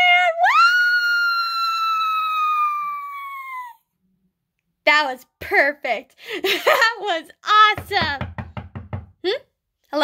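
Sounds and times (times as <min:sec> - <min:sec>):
woman's high-pitched woo cry: 0:00.0 - 0:03.8.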